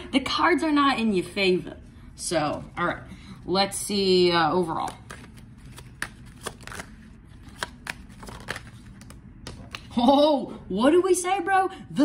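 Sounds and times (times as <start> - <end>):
cards being shuffled: 4.7 - 9.9.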